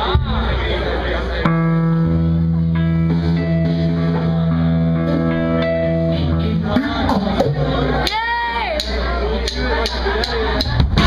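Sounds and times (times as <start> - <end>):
electric guitar ringing chords: 1.4 - 8.7.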